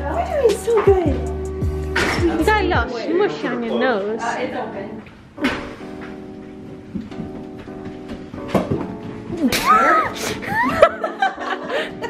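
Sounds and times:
light instrumental music: 0.0 - 12.0.

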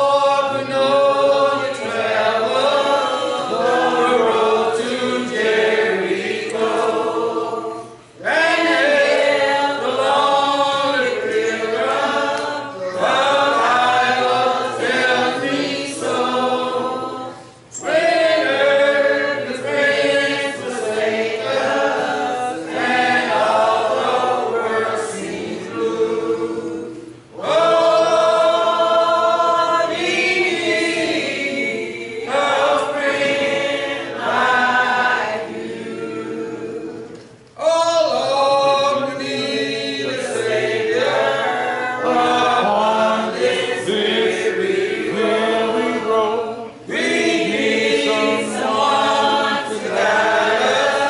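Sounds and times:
congregation singing a hymn: 0.0 - 51.0.

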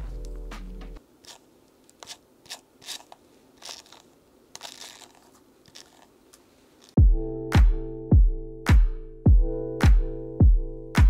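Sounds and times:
hairbrush rustling through hair: 1.2 - 7.0.

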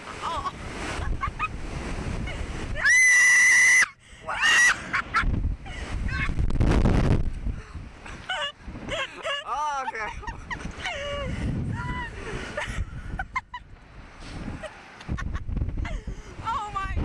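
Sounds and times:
wind rumbling on microphone: 0.0 - 17.0
person screaming: 2.8 - 4.8
people laughing: 4.3 - 5.3, 8.1 - 13.6.

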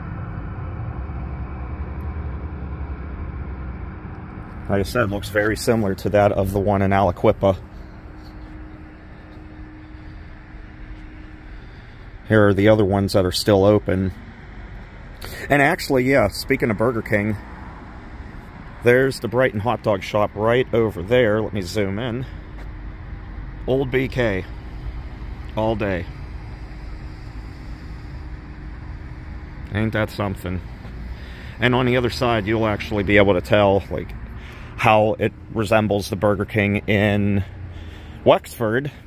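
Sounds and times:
distant road traffic rumble: 0.0 - 39.0
faint steady hum: 0.0 - 39.0.

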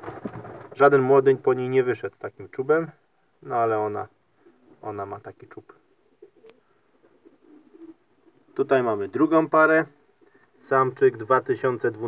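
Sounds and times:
pigeons cooing: 4.4 - 10.8.

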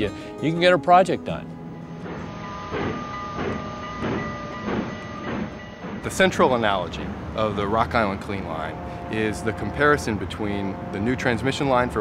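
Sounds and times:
train clacking on rails: 2.0 - 12.0.

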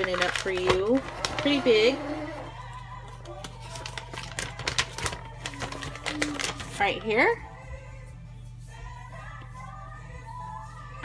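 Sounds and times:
paper crinkling and rustling: 0.0 - 2.4, 3.0 - 7.1
faint music: 0.0 - 11.0.

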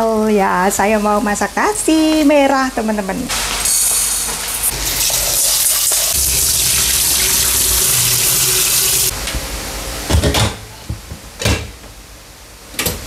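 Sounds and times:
tap water running into pot: 4.4 - 9.1.

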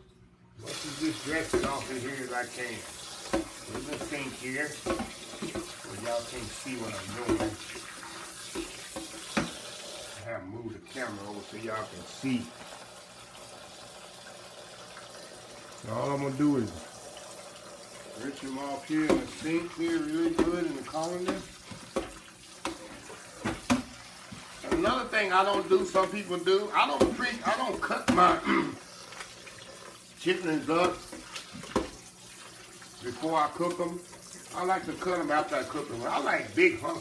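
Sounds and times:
tap water running into colander: 0.0 - 37.0.

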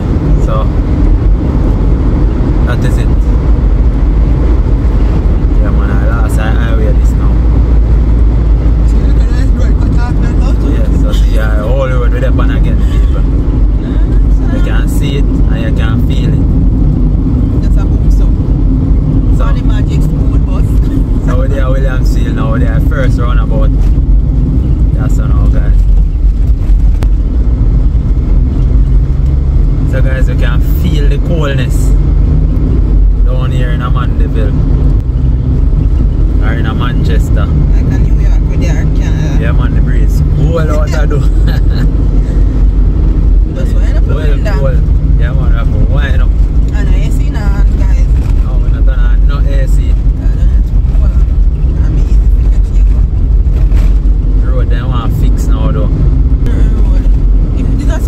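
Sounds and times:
car engine and tyres rumbling: 0.0 - 58.0
voices talking: 8.6 - 16.5, 19.1 - 23.8, 36.4 - 42.3, 43.3 - 53.1.

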